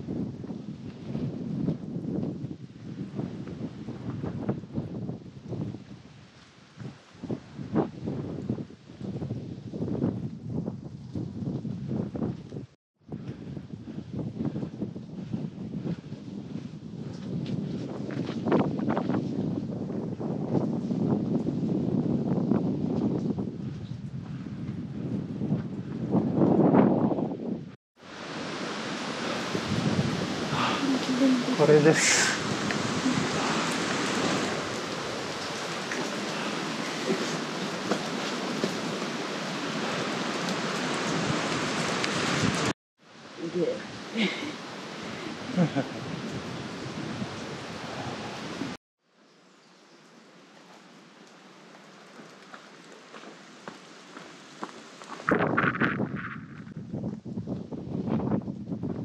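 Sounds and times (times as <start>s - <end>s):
wind buffeting microphone: 0.0s - 42.8s, 43.6s - 48.8s, 55.1s - 59.0s.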